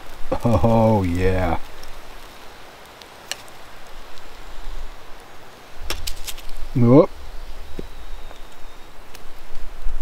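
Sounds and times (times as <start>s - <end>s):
food sizzling on a grill: 0.0s - 10.0s.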